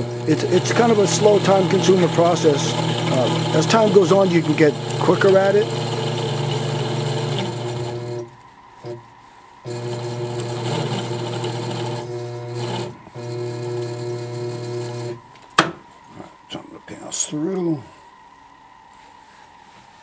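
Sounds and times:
motor humming: 0.0 - 15.2.

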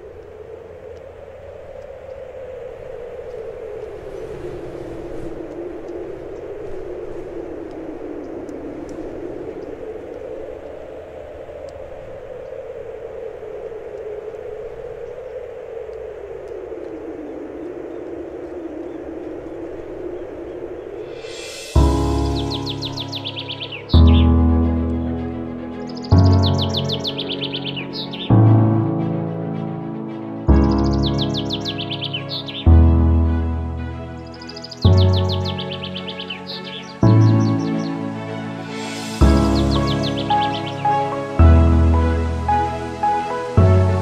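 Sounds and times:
low rumble: 0.0 - 27.2, 37.0 - 44.0
steady rushing noise: 0.0 - 44.0.

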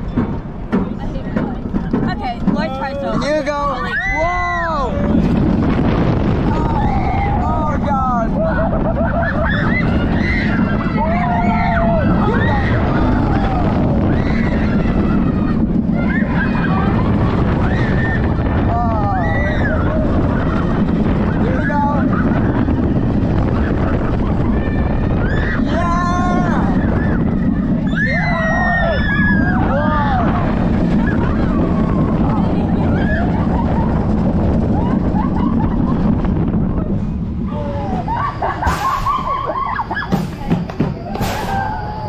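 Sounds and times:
roller coaster rushing on track: 0.0 - 42.0
riders screaming: 6.3 - 40.4, 41.0 - 42.0.

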